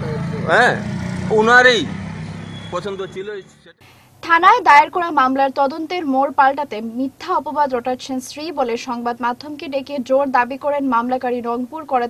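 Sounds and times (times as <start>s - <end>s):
man speaking: 0.1s - 1.9s, 2.7s - 3.8s.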